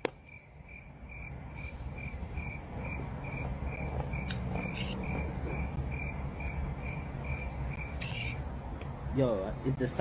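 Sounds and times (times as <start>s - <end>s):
cricket chirping: 0.0s - 8.5s.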